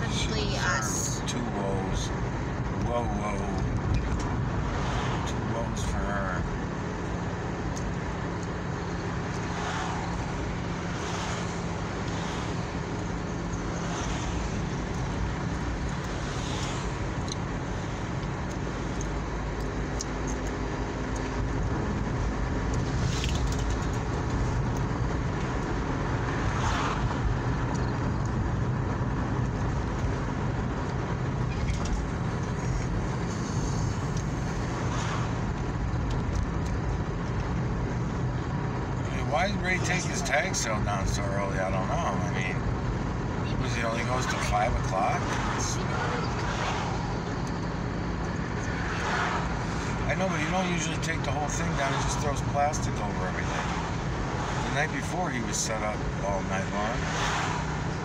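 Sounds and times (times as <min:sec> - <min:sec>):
car engine hum: 0:00.0 - 0:58.0
road rumble: 0:00.0 - 0:58.0.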